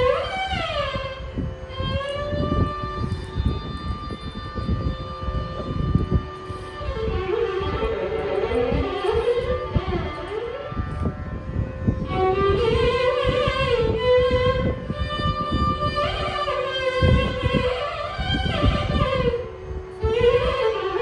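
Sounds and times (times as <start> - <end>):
long held melodic note: 0.0 - 21.0
violin playing ornamented phrases: 0.0 - 21.0.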